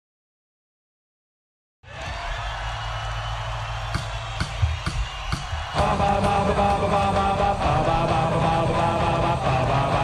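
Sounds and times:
drum strokes: 0:03.9 - 0:08.2
rock band playing loudly: 0:05.8 - 0:10.0.

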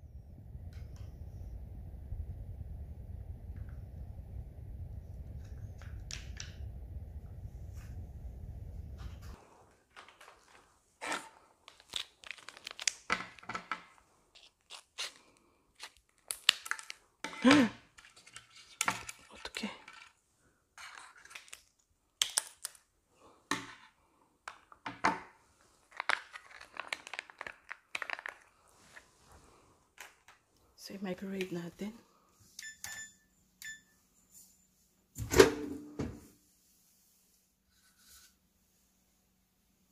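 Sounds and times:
plastic packets crinkling: 0:09.9 - 0:20.2, 0:20.8 - 0:22.9, 0:25.8 - 0:29.1.

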